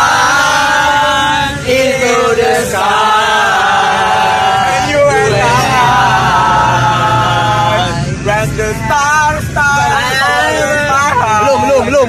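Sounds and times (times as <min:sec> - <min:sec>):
group chanting a held note: 0:00.0 - 0:08.1.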